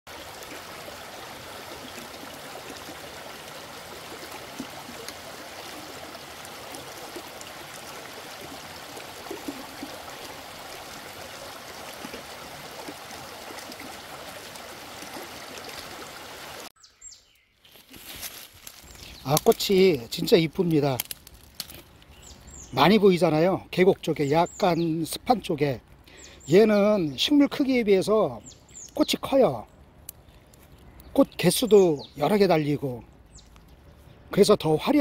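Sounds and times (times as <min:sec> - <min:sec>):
stream running over rocks: 0:00.1 - 0:16.7, 0:18.3 - 0:29.6.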